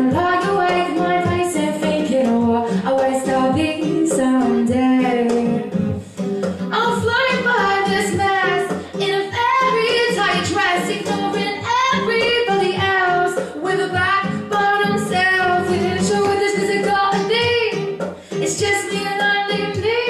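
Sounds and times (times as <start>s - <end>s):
acoustic guitar: 0.0s - 20.0s
woman singing into microphone: 0.0s - 20.0s.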